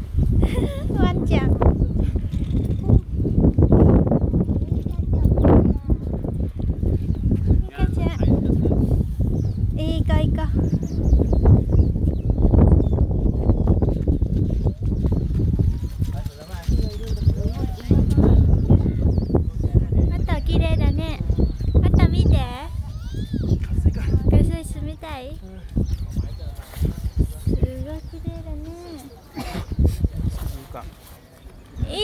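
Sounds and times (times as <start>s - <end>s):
rumble and thumping on microphone: 0.0s - 22.5s
people talking: 0.4s - 3.0s, 4.6s - 6.2s, 15.6s - 31.0s
young child's high voice: 4.8s - 6.1s, 31.8s - 32.0s
faint scattered voices: 14.6s - 32.0s.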